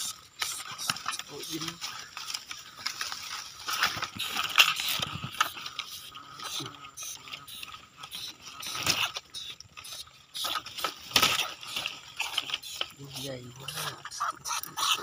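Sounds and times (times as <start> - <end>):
dry grass and leaves rustling: 0.0 - 15.0.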